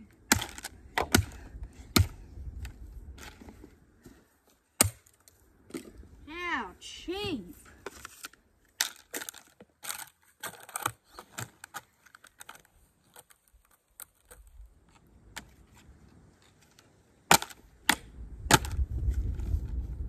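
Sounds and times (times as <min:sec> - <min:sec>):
plastic crunching and crackling: 0:08.0 - 0:14.5.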